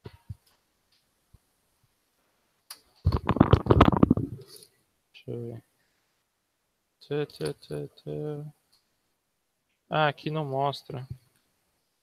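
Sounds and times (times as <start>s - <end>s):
headset rubbing and knocking: 3.0s - 4.5s.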